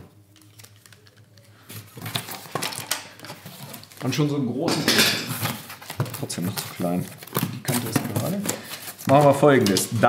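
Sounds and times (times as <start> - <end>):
cardboard rustling and scraping: 1.7 - 4.3, 5.3 - 9.9.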